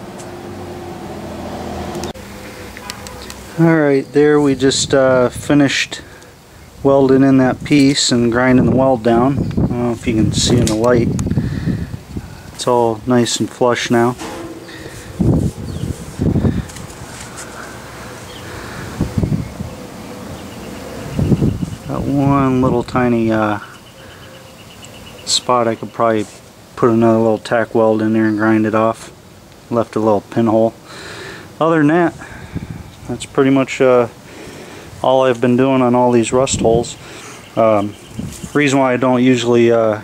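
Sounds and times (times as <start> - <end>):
faint outdoor background: 0.0 - 40.0
wind buffeting microphone: 7.4 - 23.3, 32.2 - 33.1, 37.9 - 38.6
low held tones: 13.8 - 16.7.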